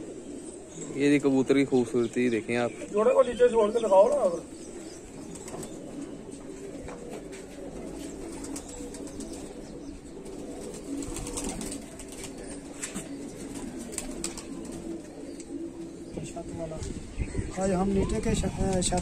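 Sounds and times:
pigeons cooing: 0:00.0 - 0:19.0.

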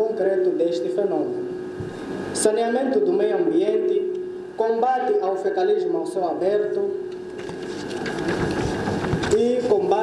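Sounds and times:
paper rustling and crackling: 0:07.4 - 0:09.4.

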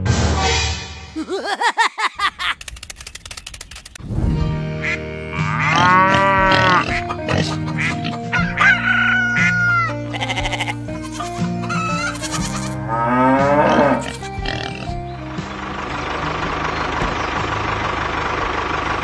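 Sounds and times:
background music: 0:04.1 - 0:17.7
animals bleating: 0:04.8 - 0:15.2.

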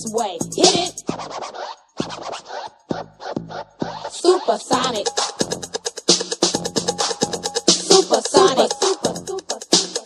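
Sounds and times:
drum-machine beat with deep kick: 0:00.0 - 0:10.0
turntable scratching: 0:00.0 - 0:10.0.

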